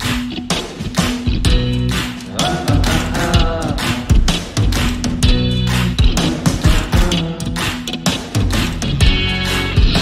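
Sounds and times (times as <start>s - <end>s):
rock music with guitar and drums: 0.0s - 10.0s.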